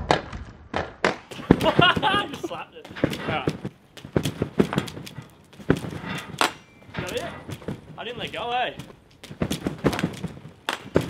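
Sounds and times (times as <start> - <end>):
dull thuds on trampoline: 1.3 - 11.0.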